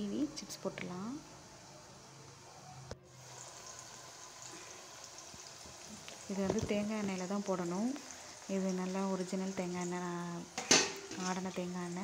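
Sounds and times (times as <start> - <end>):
banana slices sizzling in oil: 0.0 - 12.0.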